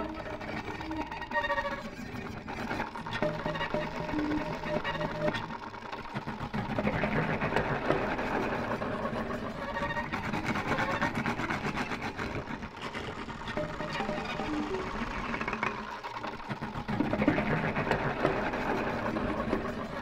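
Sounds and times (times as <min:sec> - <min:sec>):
violin with electronic effects: 0:00.0 - 0:20.0.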